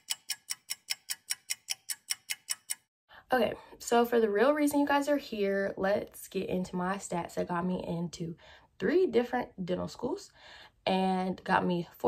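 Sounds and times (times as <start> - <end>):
clock ticking: 0.0 - 2.9.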